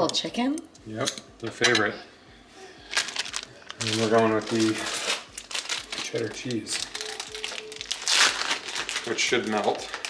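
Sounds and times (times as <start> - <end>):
plastic packet crinkling: 2.9 - 10.0.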